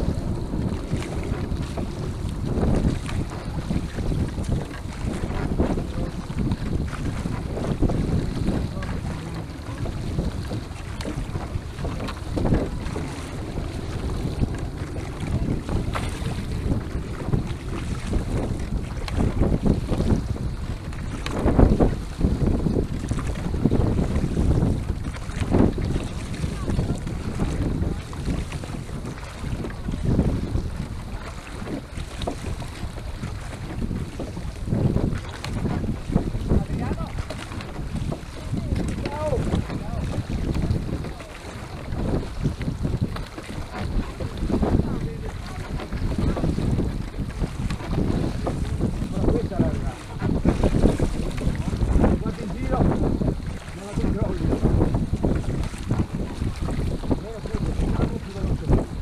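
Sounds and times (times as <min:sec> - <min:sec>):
oar strokes swells: 0:00.0 - 0:59.0
water washing along hull: 0:00.0 - 0:59.0
wind on microphone: 0:00.0 - 0:59.0.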